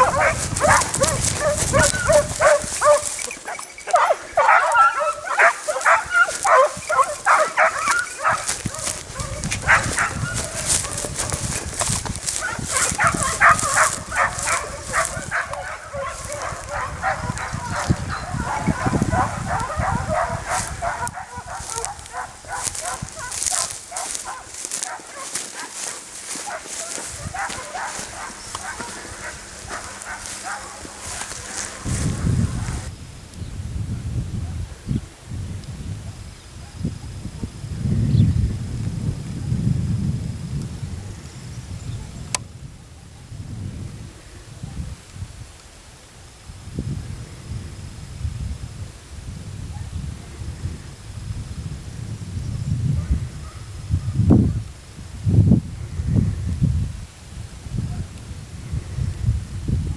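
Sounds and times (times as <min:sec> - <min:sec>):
dogs baying and yelping: 0:00.0 - 0:32.9.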